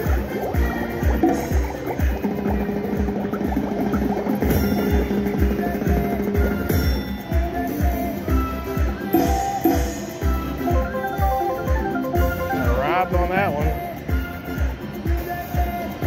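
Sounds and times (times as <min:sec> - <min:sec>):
slot machine bonus music: 0:00.0 - 0:07.8, 0:08.8 - 0:14.0.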